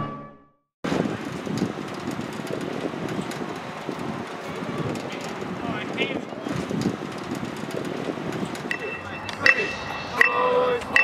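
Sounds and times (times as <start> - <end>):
steady outdoor rushing noise: 0.8 - 11.0.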